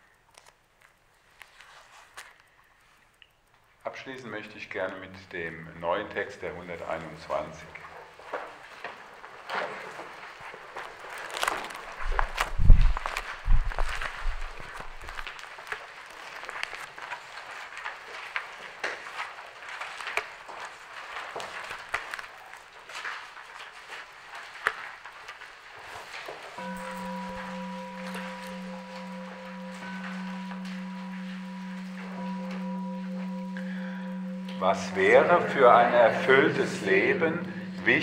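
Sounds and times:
faint crackling and rustling: 0:00.0 - 0:33.3
low sustained drone note: 0:26.6 - 0:38.0.

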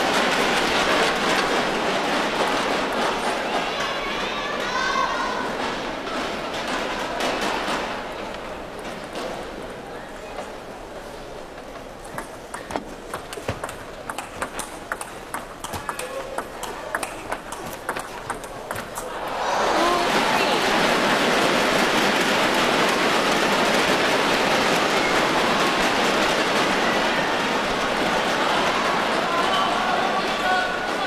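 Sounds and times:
table tennis ball clicking: 0:12.0 - 0:19.0
crowd applause and cheering: 0:15.6 - 0:31.0.

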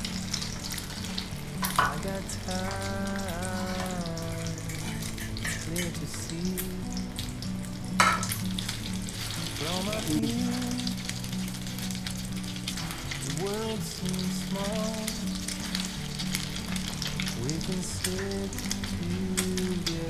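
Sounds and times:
faint song: 0:00.0 - 0:20.0
meat sizzling in hot oil: 0:00.0 - 0:20.0.

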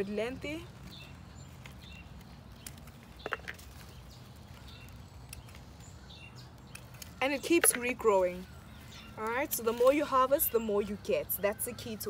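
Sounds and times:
pruning shears snipping: 0:00.4 - 0:10.7.

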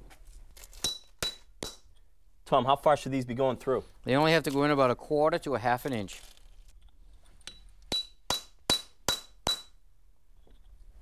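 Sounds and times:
hammer striking steel punch: 0:00.8 - 0:01.9, 0:07.5 - 0:09.8.

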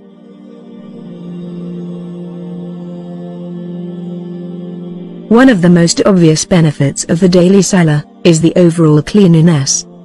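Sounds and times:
sustained droning tone: 0:00.0 - 0:10.0.

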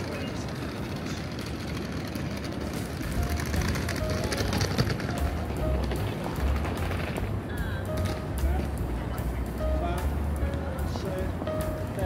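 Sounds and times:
faint music: 0:00.0 - 0:12.0
traffic rumble: 0:00.0 - 0:12.0.

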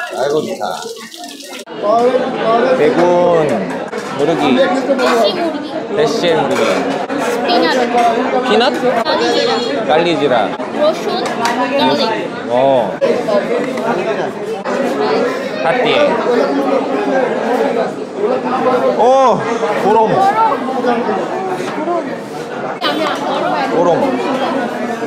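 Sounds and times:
crowd chattering: 0:00.0 - 0:25.0.

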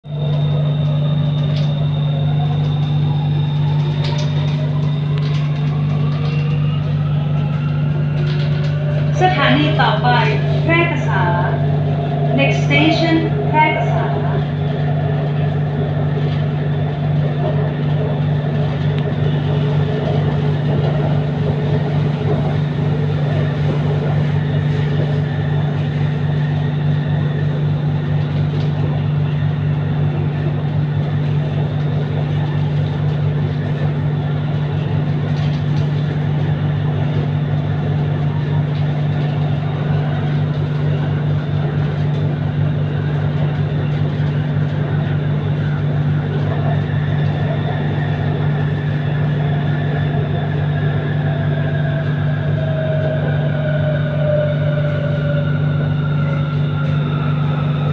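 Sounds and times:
electric train low hum: 0:00.0 - 0:57.9
train wheels rumbling on rail: 0:00.0 - 0:57.9.

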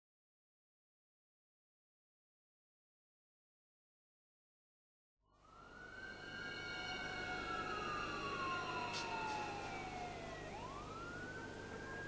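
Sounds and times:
siren wailing: 0:05.3 - 0:12.0.

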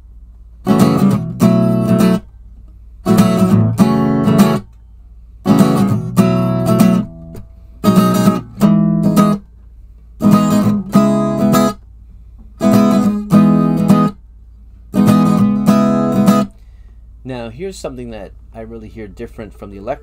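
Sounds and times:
acoustic guitar strums: 0:00.5 - 0:04.8, 0:05.4 - 0:17.1.

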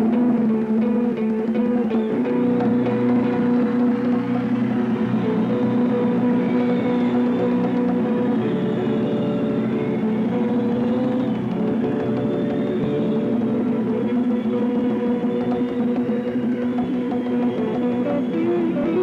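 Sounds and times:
live band instrumental: 0:00.0 - 0:19.0.

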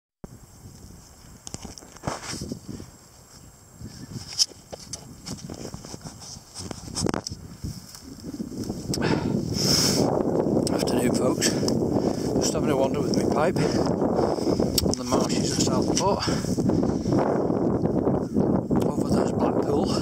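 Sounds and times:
wind buffeting microphone: 0:00.2 - 0:20.0
footsteps crunching dry grass: 0:00.3 - 0:18.4.

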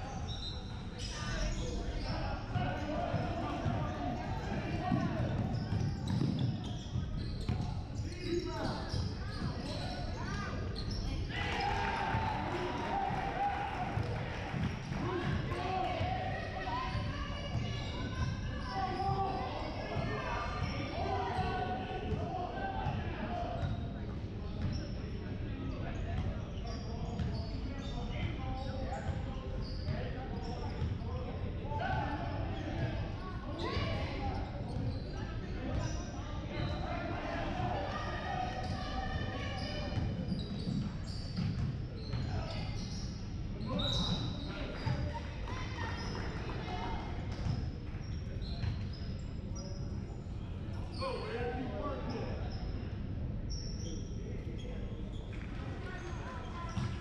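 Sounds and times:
echoing voices in a hall: 0:00.0 - 0:57.0.

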